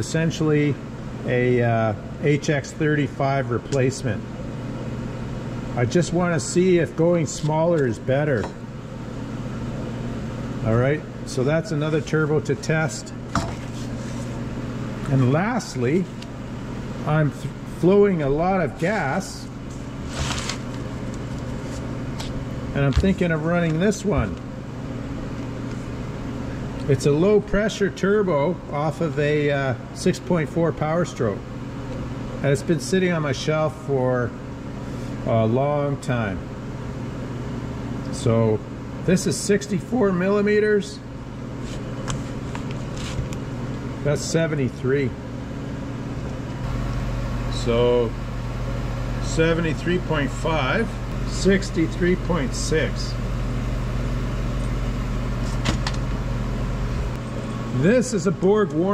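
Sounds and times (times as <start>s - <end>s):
low shop hum: 0.0s - 58.9s.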